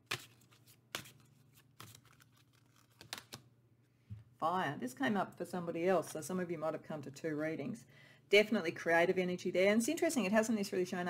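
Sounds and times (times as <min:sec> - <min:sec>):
cards shuffled snapping: 0:00.1 - 0:03.4.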